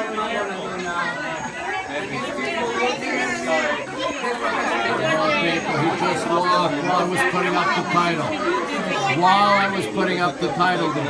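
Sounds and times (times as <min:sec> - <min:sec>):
onlookers chattering: 0:00.0 - 0:11.0.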